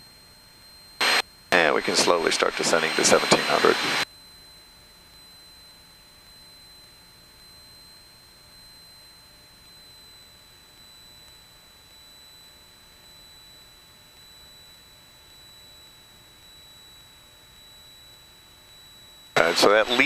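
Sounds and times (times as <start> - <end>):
high-pitched whine tones: 0.0 - 20.0.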